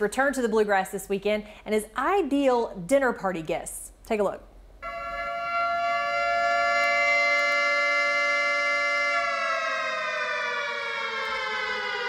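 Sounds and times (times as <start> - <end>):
air-raid siren wailing: 4.8 - 12.0.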